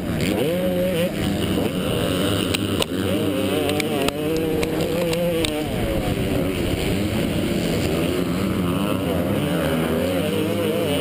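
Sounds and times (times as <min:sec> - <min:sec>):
motocross engine running hard: 0:00.0 - 0:11.0
sharp ticks: 0:02.2 - 0:05.7.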